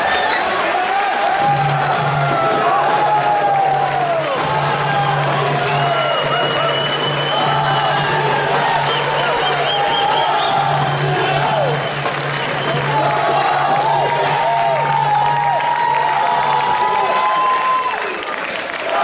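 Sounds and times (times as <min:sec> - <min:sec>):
crowd cheering: 0:00.0 - 0:19.0
pitched calls and whistles: 0:05.1 - 0:08.1, 0:08.8 - 0:12.9.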